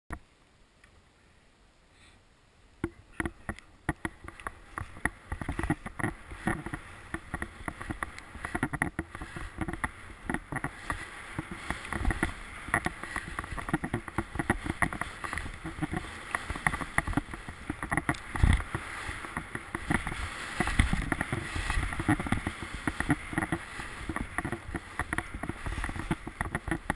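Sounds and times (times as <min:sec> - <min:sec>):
skis thumping on bumps: 0:02.8 - 0:26.9
skis scraping over snow: 0:03.0 - 0:26.9.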